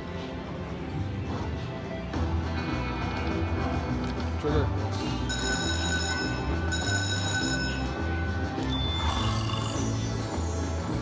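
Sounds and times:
slot machine music: 4.2 - 11.0
ringing chime tones: 5.3 - 11.0.

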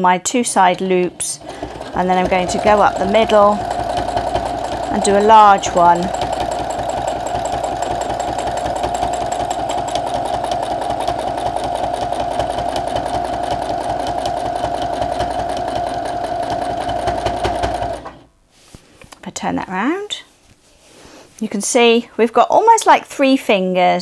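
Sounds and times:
sewing machine stitching: 0.4 - 18.3.

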